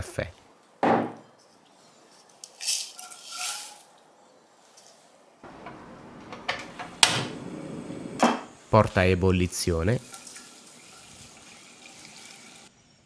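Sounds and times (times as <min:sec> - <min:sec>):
faint steady hiss: 0:00.0 - 0:13.0
metal saucepan clinking and scraping: 0:02.8 - 0:03.9.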